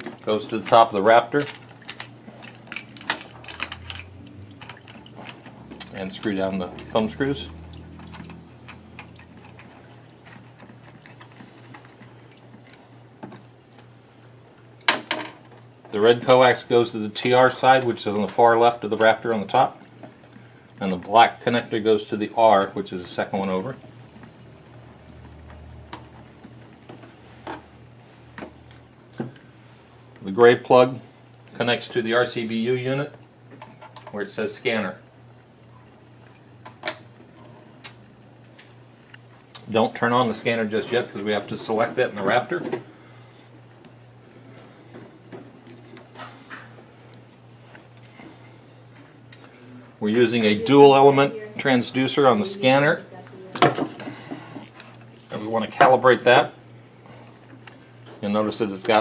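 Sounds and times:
low steady hum: 0.0s - 59.0s.

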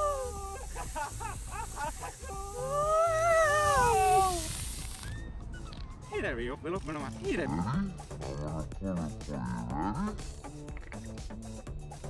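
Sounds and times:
excited high-pitched cries: 0.0s - 5.4s.

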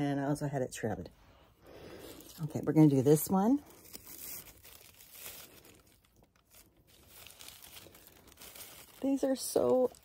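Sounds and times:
fabric gift bag rustling: 1.7s - 10.0s.

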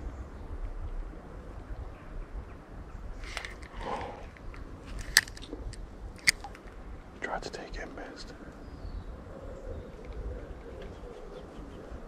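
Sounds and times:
wind on microphone: 0.0s - 7.3s, 7.9s - 12.0s
sharp clicks: 5.0s - 6.7s.

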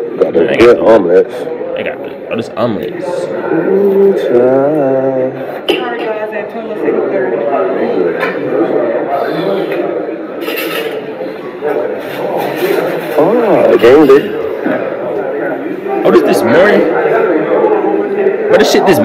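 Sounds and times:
indistinct voices talking: 1.2s - 6.1s.

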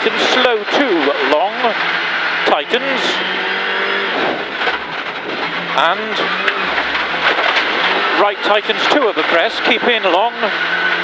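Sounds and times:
car engine at steady revs: 0.0s - 11.0s
gravel and tyre noise: 0.0s - 11.0s.

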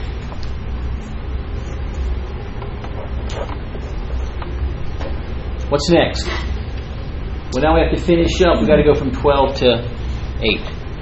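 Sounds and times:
room noise hiss: 0.0s - 11.0s
ventilation hum: 0.0s - 11.0s.

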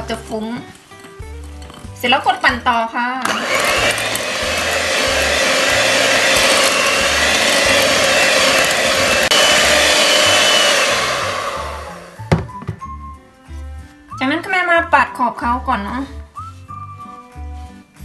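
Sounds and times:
electric hand mixer running: 3.2s - 12.4s.

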